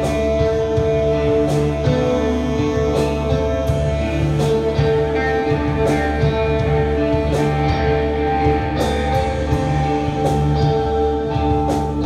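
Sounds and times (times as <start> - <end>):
drone rock band playing: 0.0 - 12.0.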